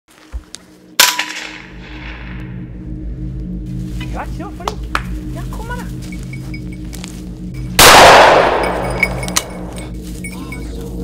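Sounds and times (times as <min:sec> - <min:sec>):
gunshot with ringing echo: 0:07.8 - 0:09.7.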